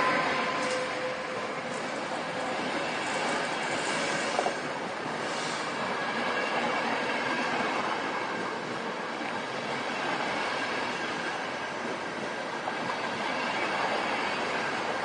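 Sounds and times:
train wheels running on rails: 0:00.0 - 0:15.0.

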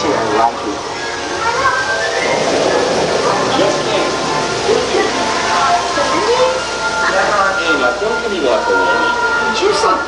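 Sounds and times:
indistinct voices: 0:00.0 - 0:10.0
music playing: 0:00.0 - 0:10.0.

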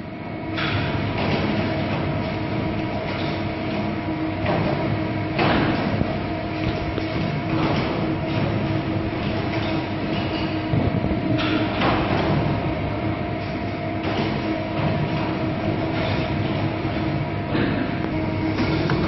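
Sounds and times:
machine mechanical hum: 0:00.0 - 0:19.0.

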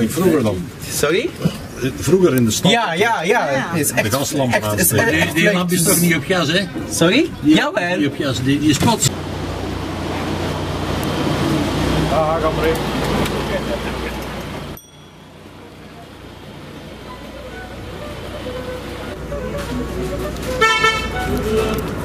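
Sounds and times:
street sound: 0:00.0 - 0:22.0
vehicle running and wind noise: 0:03.9 - 0:22.0
vehicle horn toot: 0:20.4 - 0:21.9.

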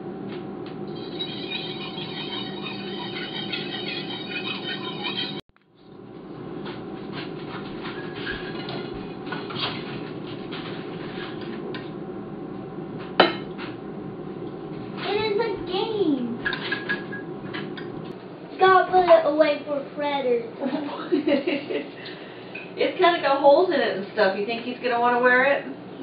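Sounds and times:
steady low hum: 0:00.0 - 0:26.0
cutlery scraping on ceramic plate: 0:07.8 - 0:11.6, 0:16.4 - 0:17.9.

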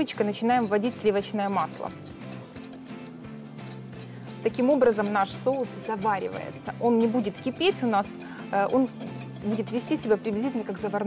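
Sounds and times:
soft background music: 0:00.0 - 0:11.0
whisk ticking against glass bowl: 0:00.0 - 0:11.0.

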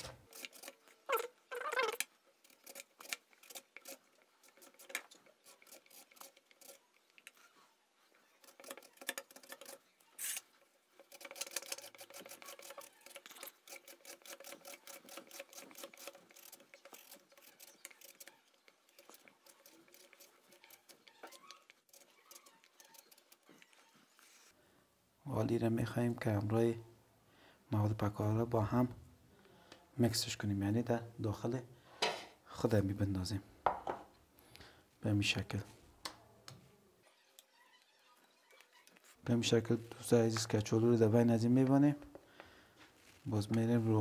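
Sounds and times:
potato scraping on mandoline slicer: 0:00.0 - 0:24.6.

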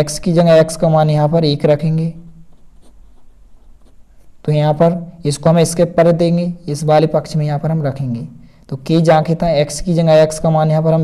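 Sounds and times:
pen scratching on paper: 0:02.4 - 0:04.4.

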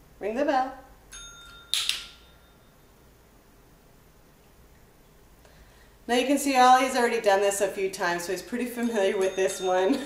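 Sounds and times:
dinner bell ringing: 0:01.1 - 0:03.0, 0:08.8 - 0:10.0.

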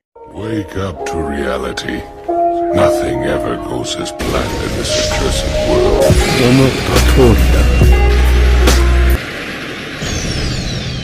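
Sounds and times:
bass-heavy music: 0:04.1 - 0:09.2
steady noisy rush: 0:04.2 - 0:11.0.

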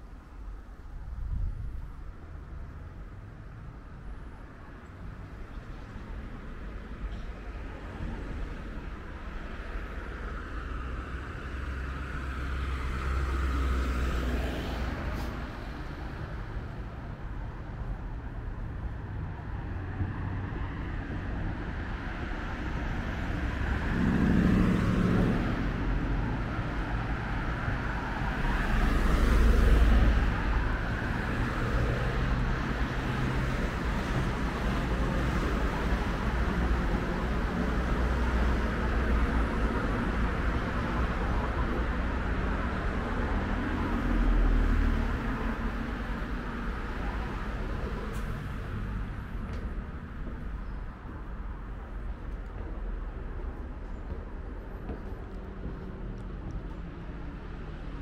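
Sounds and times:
traffic rumble: 0:00.0 - 0:58.0
vehicles passing: 0:00.0 - 0:58.0.

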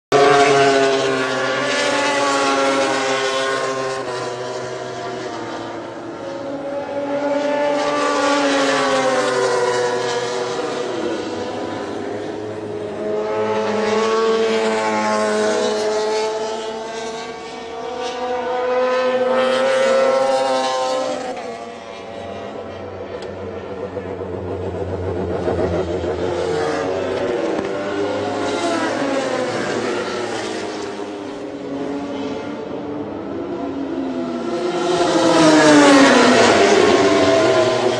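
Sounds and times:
racing motorcycles passing at high revs: 0:00.1 - 0:37.9.

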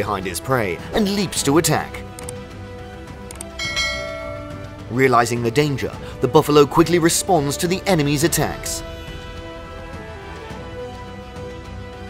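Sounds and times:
soft background music: 0:00.0 - 0:12.0
bell-like chime: 0:03.6 - 0:05.1.

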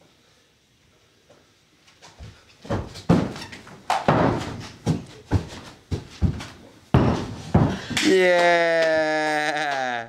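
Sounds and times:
bare-foot thuds on carpet: 0:04.0 - 0:07.9.

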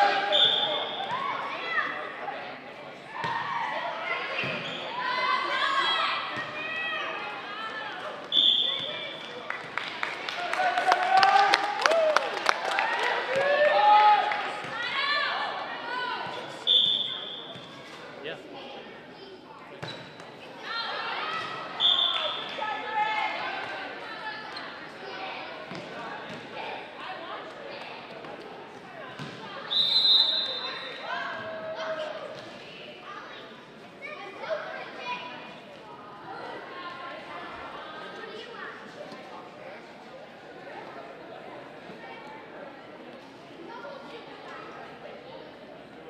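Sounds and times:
referee's whistle blasts: 0:00.2 - 0:01.1, 0:08.3 - 0:09.1, 0:16.6 - 0:17.5, 0:21.8 - 0:22.5, 0:29.7 - 0:31.1
players and spectators shouting: 0:10.4 - 0:16.4.

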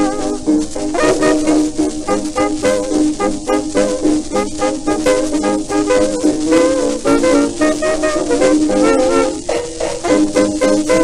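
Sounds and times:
dance orchestra playing foxtrot: 0:00.0 - 0:11.0.

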